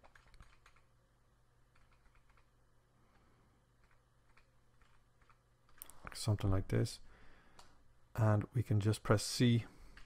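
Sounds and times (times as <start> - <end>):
faint keyboard keystrokes: 0.0 - 0.9, 1.7 - 2.5, 3.8 - 6.2.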